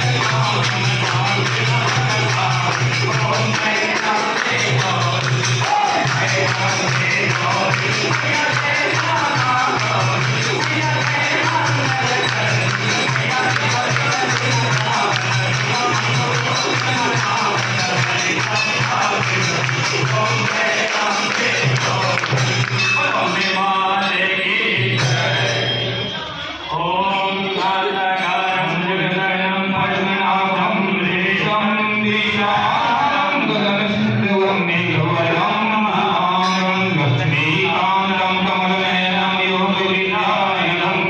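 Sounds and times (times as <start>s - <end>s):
jingling tambourine: 0.0s - 26.2s
crowd singing devotional song: 0.0s - 41.0s.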